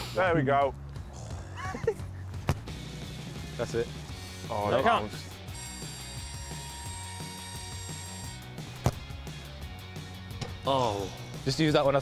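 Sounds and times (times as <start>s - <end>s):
background music: 0.0s - 12.0s
tape fast-forward whine and whirr: 5.5s - 8.6s.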